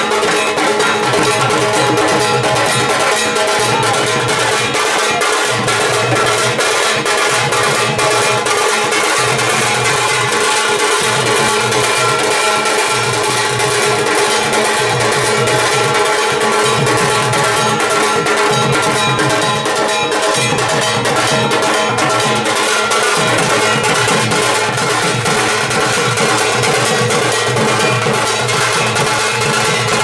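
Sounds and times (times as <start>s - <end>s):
large barrel drums beaten: 0.0s - 30.0s
metallic ringing: 0.0s - 30.0s
smaller stick-beaten drum: 0.0s - 30.0s.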